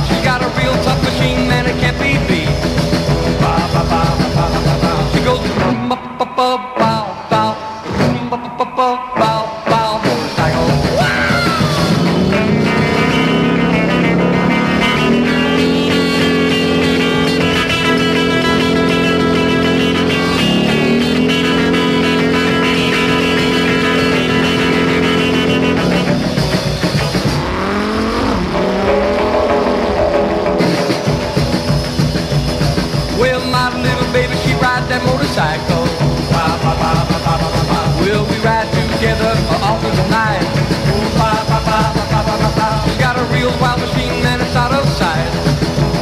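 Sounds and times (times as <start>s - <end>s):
motorcycle engine revving: 0.0s - 5.7s, 10.2s - 46.0s
rock and roll instrumental: 0.0s - 46.0s.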